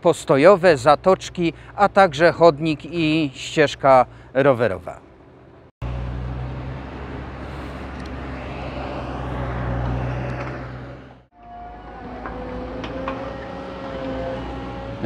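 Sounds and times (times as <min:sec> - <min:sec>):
diesel engine droning: 0:00.0 - 0:15.0.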